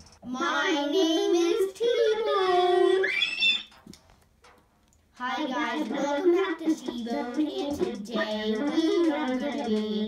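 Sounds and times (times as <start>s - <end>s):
child singing without words: 0.2s - 3.3s, 5.2s - 10.0s
child squealing: 3.0s - 3.7s.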